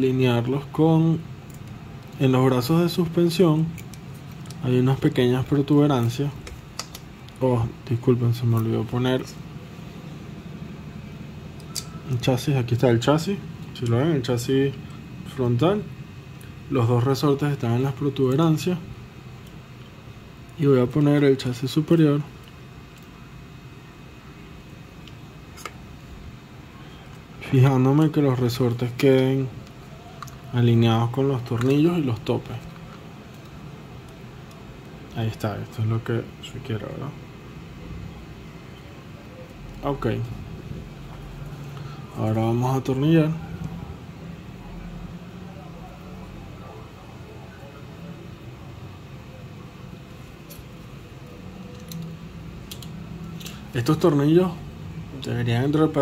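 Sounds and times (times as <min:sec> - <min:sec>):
low room hum: 0:00.0 - 0:56.0.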